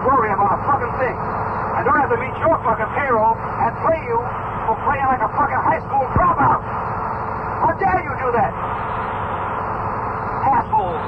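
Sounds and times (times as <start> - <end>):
man's voice: 0.0 - 6.6, 7.6 - 8.6
muffled bus rumble: 0.0 - 11.0.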